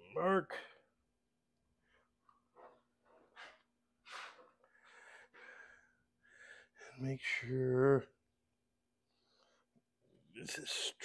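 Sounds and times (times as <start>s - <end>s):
faint breaths: 1.8s - 7.0s.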